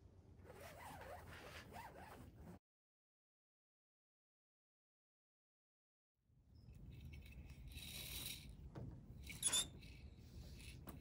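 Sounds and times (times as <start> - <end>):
rope rubbing through grommets: 0.4 - 2.6.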